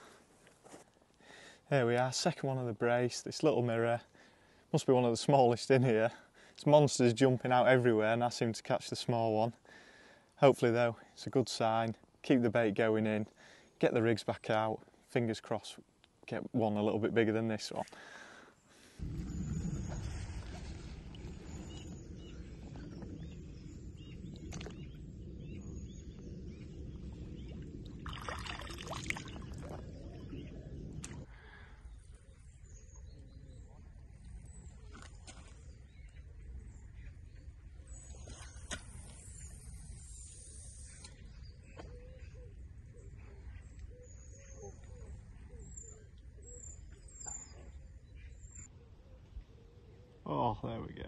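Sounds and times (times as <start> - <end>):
faint bird chirps: 18.5 - 51.0
wind rumbling on microphone: 19.0 - 49.5
water splash: 27.8 - 29.8.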